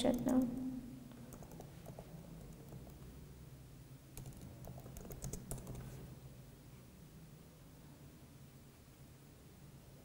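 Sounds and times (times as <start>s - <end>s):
computer keyboard keystrokes: 0.0s - 0.6s, 1.3s - 3.0s, 4.2s - 5.9s
low steady hum: 0.0s - 10.0s.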